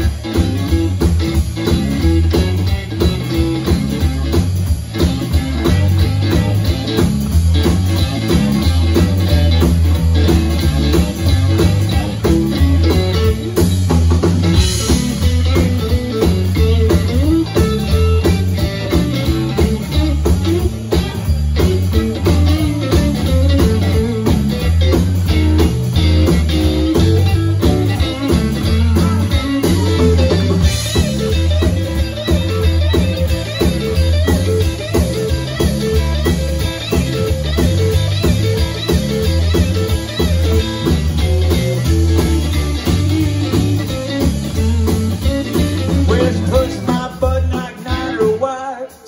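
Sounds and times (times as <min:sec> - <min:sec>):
driving bass line: 0:00.0 - 0:48.6
electric guitar: 0:00.0 - 0:49.0
rock band playing: 0:00.0 - 0:49.0.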